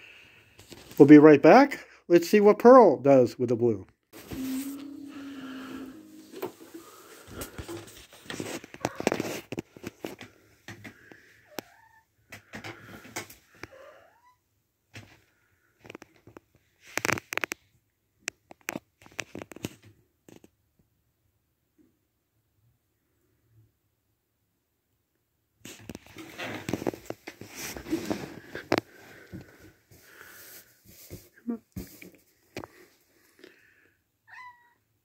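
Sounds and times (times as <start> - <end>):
low steady hum: 4.2 - 7.4.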